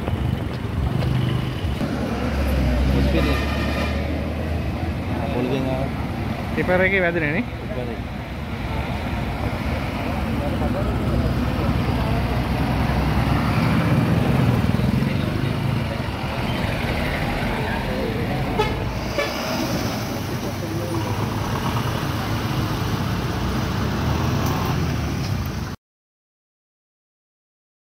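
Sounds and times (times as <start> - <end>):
vehicle engines passing: 0.0 - 25.8
background voices: 7.9 - 23.8.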